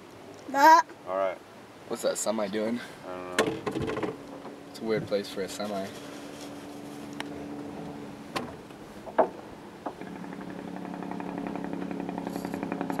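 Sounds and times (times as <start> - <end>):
vehicle engine pulsing: 6.2 - 13.0.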